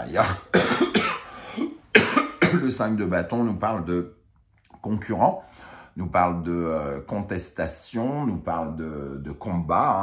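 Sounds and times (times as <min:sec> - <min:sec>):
person coughing: 0:00.2 - 0:02.8
breath noise: 0:01.2 - 0:01.8, 0:05.4 - 0:06.0.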